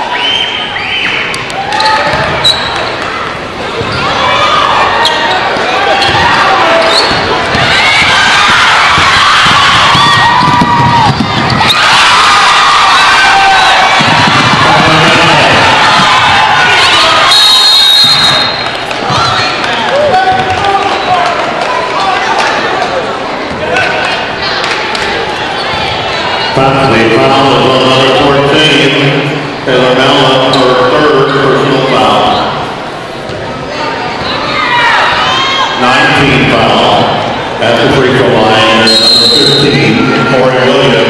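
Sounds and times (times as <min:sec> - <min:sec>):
players and spectators shouting: 0:00.0 - 0:41.0
referee's whistle blowing: 0:02.4 - 0:02.9, 0:17.3 - 0:18.7, 0:38.8 - 0:39.8
basketball bouncing on hardwood: 0:09.0 - 0:11.6, 0:14.0 - 0:15.3.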